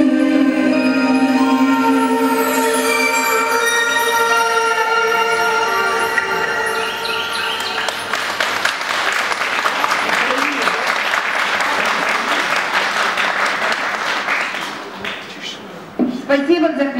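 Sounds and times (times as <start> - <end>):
dance music: 0.0 - 8.6
audience applauding: 7.3 - 15.3.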